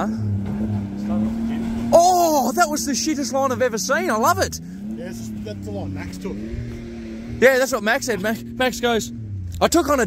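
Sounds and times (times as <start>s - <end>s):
engine droning at low revs: 0.0s - 10.0s.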